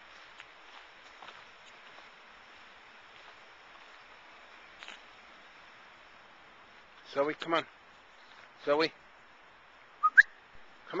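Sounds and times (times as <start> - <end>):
person whistling to call a dog: 10.0 - 10.3.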